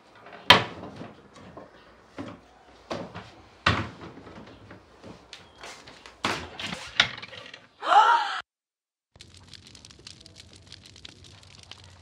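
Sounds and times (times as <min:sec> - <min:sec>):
cabinet doors and drawers banging: 0:00.2 - 0:07.7
woman's startled cry: 0:07.8 - 0:08.5.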